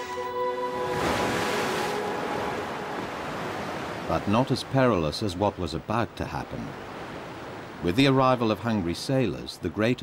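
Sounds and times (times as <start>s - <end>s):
surf washing over rocks: 0.8s - 10.0s.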